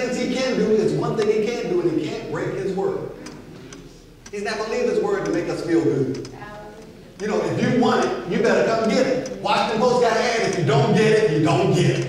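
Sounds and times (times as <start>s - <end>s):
man preaching over loudspeakers: 0.0s - 3.2s, 4.3s - 6.2s, 7.2s - 12.0s.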